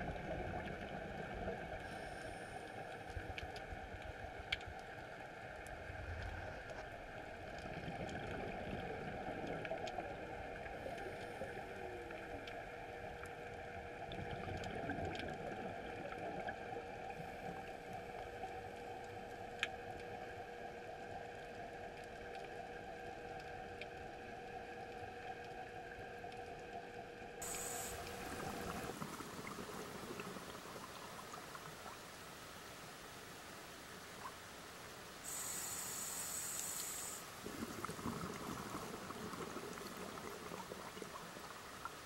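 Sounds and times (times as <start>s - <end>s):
faint steady hum: 0.0s - 42.0s
underwater hiss: 1.8s - 3.0s, 27.4s - 31.3s, 35.2s - 41.1s
faint clicks: 35.3s - 37.2s.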